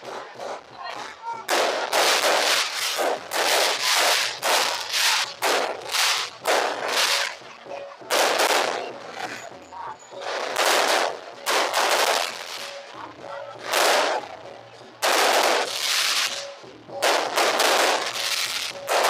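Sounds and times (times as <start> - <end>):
fireworks bangs: 0.0 - 7.4, 8.0 - 9.4, 10.1 - 12.9, 13.6 - 14.3, 15.0 - 19.0.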